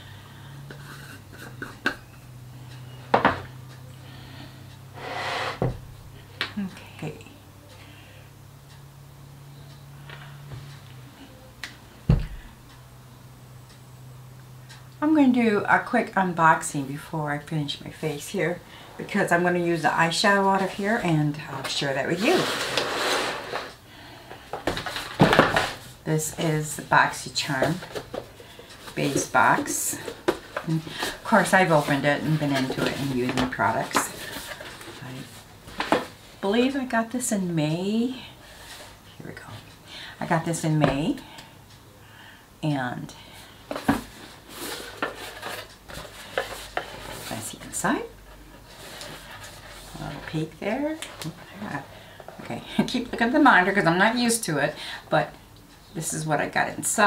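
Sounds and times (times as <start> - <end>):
low room hum: 0.0 - 57.0.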